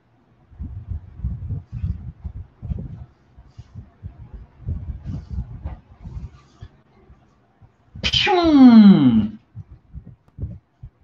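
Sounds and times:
person sneezing loudly: 8.0 - 9.4.

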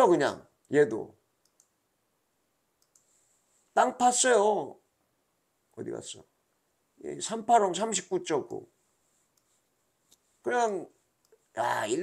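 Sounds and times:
computer mouse clicks: 1.4 - 1.8, 2.8 - 3.1.

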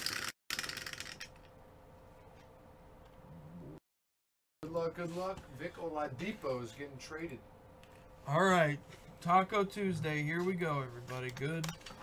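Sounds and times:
dice rattling in plastic dome: 0.0 - 1.4.

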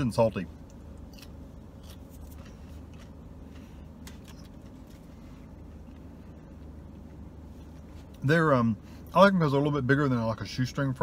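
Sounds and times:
steady low hum: 0.0 - 11.0
person chewing crunchy food: 0.6 - 8.2.

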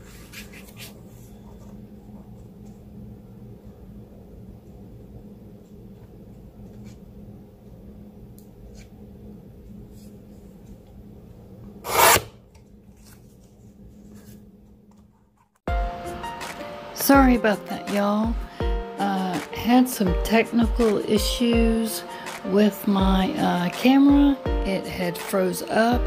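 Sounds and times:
steady low hum: 0.0 - 26.0
paper trimmer blade rasping: 11.8 - 12.3.

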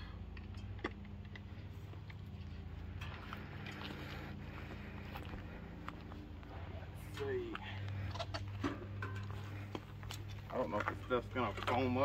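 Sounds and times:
steady low hum: 0.0 - 12.0
flip-flop footsteps on grass: 1.9 - 12.0.

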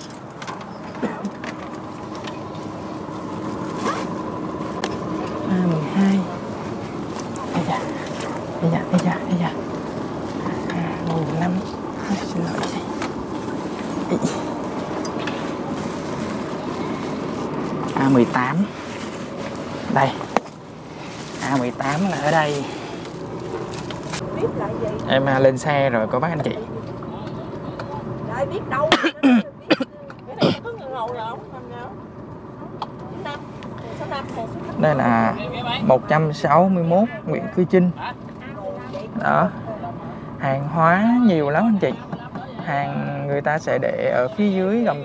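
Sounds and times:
faint steady cabin hum: 0.0 - 45.0
steady background noise: 0.0 - 45.0
fabric rustling and scraping: 1.3 - 4.9, 6.4 - 24.3.

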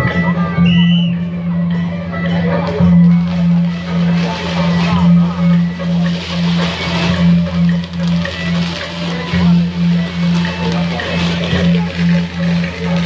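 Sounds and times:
crowd voices: 0.0 - 13.0
low pulsing tone: 0.0 - 13.0
sharp percussion knocks: 1.7 - 13.0.

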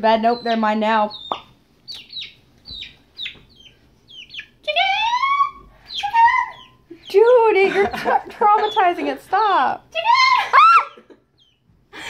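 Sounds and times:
chick peeping: 0.0 - 7.4, 10.0 - 11.7.

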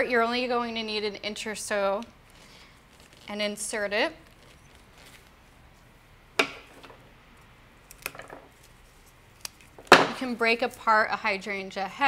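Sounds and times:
soft rustle of flowers: 2.2 - 6.0, 8.5 - 9.4.

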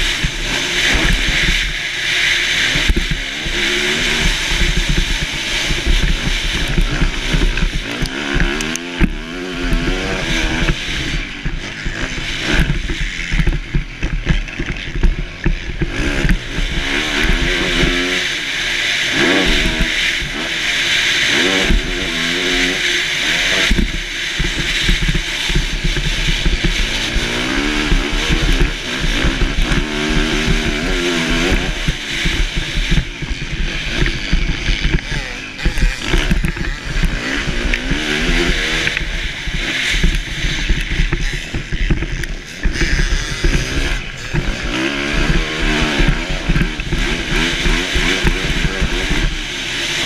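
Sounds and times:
dirt bike engine revving: 0.0 - 50.0.

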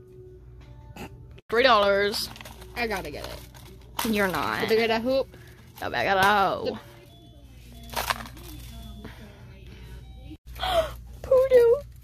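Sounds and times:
faint background music: 0.0 - 12.0
low steady hum: 0.0 - 12.0.

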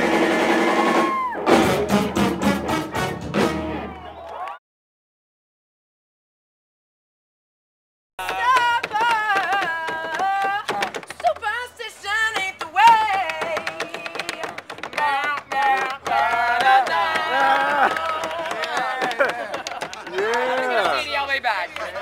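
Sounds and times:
live melody with sliding notes: 0.0 - 4.0.

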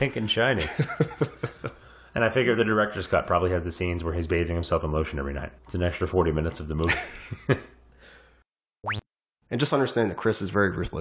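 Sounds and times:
man laughing: 0.6 - 1.8, 6.8 - 7.8
cartoon boing sound effect: 8.8 - 9.1.

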